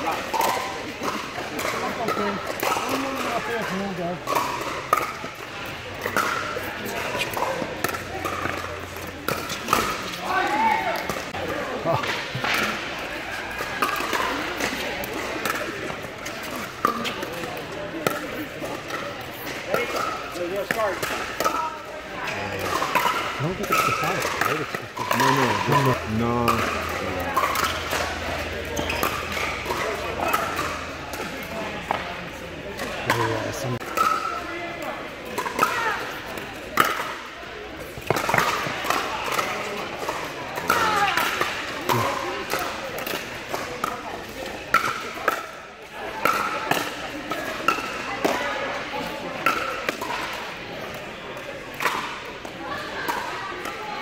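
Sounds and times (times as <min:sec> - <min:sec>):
chatter of players: 0:00.0 - 0:54.0.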